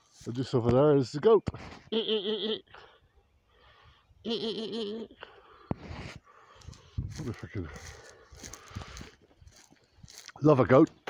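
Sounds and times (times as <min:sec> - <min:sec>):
goat bleating: 0:01.9 - 0:02.9, 0:04.2 - 0:05.4.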